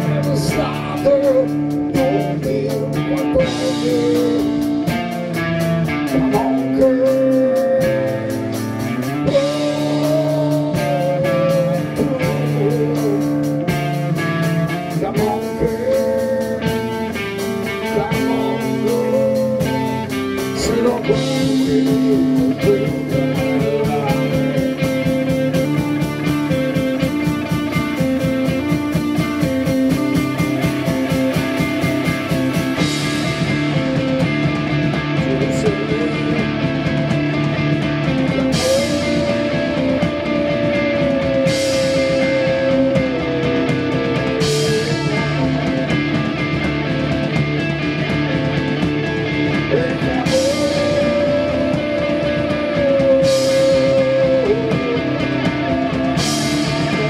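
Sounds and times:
blues-rock band playing: 0.0s - 57.0s.

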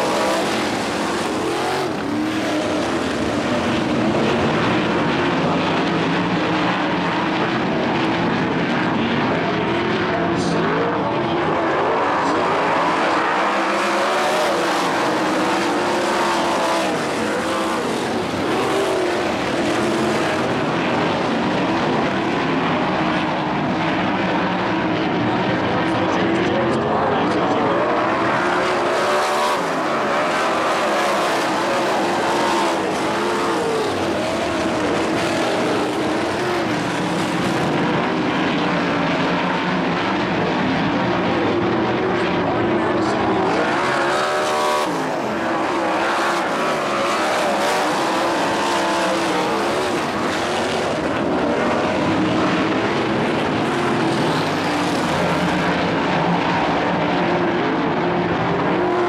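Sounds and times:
racing car engines: 0.0s - 59.0s.

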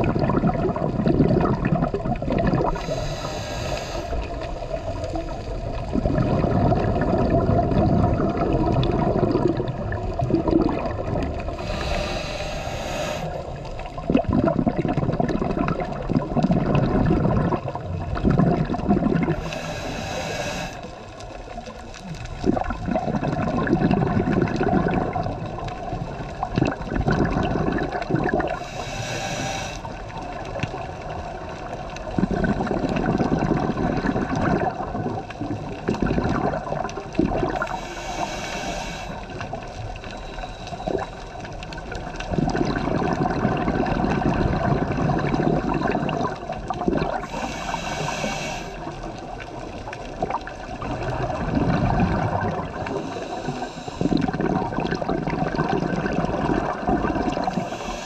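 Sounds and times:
exhaled bubbles gurgling: 0.0s - 58.0s
regulator hissing inhalations: 2.7s - 5.5s, 11.5s - 13.7s, 19.3s - 21.0s, 28.5s - 30.2s, 37.5s - 39.5s, 47.2s - 49.0s, 52.8s - 54.4s, 57.5s - 58.0s.

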